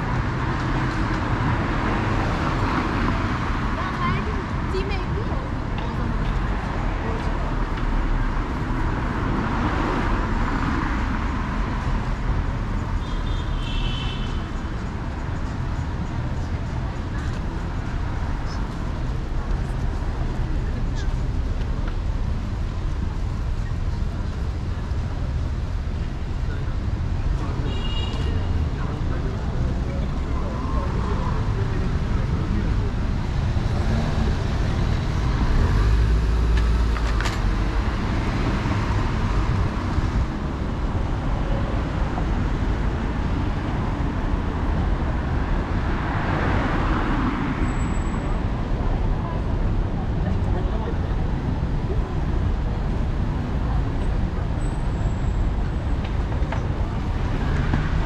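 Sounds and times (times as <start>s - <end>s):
road traffic rumble: 0.0s - 58.0s
vehicles passing close by: 0.0s - 58.0s.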